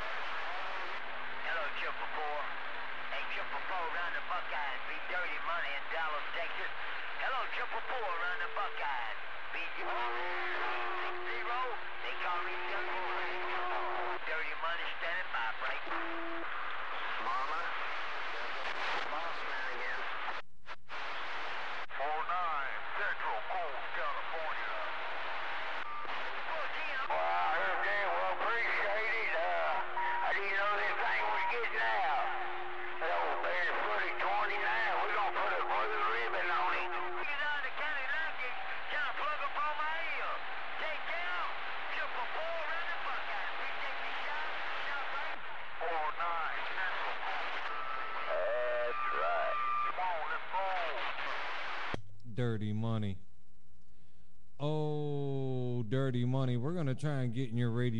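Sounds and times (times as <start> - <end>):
radio static: 0.0 - 52.0
garbled radio chatter: 3.2 - 17.8, 26.0 - 53.0.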